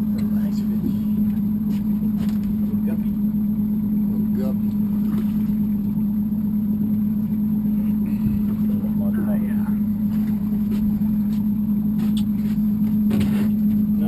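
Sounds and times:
outboard motor idling: 0.0s - 14.0s.

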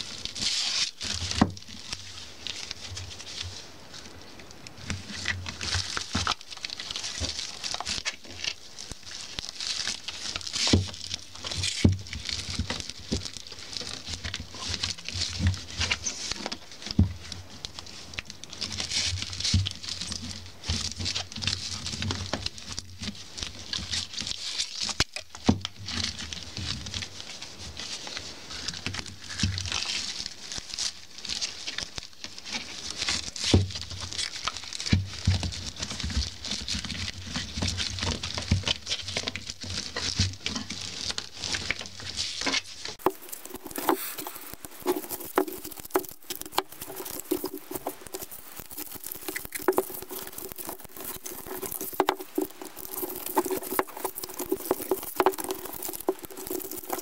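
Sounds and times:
broom bristles rustling and crackling: 0.0s - 57.0s
wire clicks and scratches: 5.1s - 57.0s.

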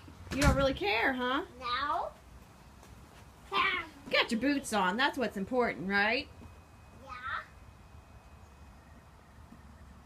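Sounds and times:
child saying yeah: 1.6s - 2.1s, 3.5s - 4.0s, 7.0s - 7.5s.

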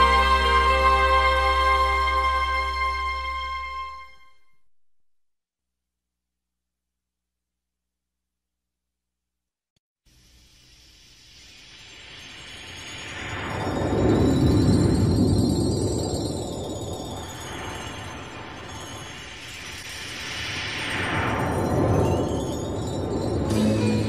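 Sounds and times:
faint high wavering tone: 10.2s - 24.0s.

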